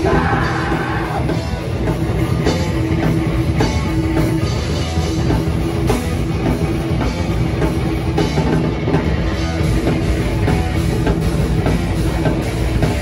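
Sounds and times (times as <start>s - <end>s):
electric guitars: 0.0s - 13.0s
pounding drum kit: 0.0s - 13.0s.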